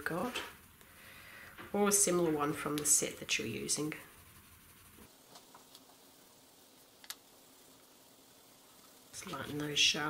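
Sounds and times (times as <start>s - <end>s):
coloured pencil scratching on paper: 3.3s - 5.1s.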